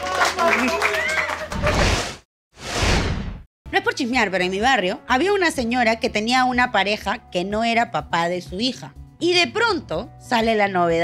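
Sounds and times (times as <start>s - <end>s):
transition whoosh: 1.6s - 3.5s
woman speaking: 3.7s - 11.0s.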